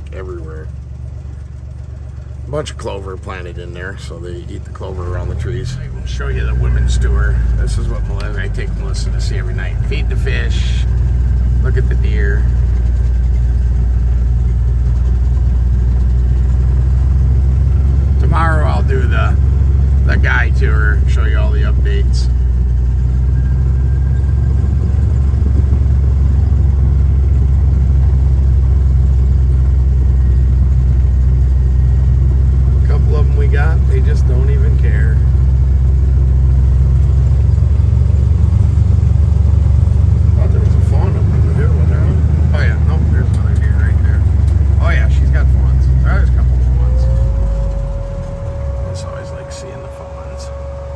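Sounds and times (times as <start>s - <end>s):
buggy engine droning: 0.0s - 50.9s.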